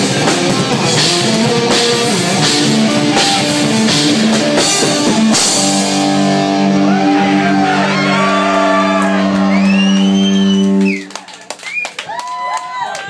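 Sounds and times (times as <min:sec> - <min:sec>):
drum and cymbal hit: 0:00.0 - 0:06.3.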